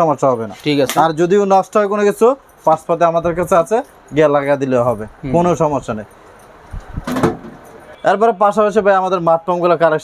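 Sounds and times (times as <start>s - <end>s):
metal box knocking on shelf: 7.1s - 7.6s.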